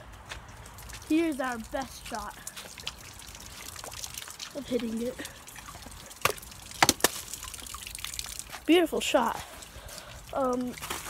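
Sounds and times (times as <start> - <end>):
plastic bottle knocking on ice: 6.2 - 7.3.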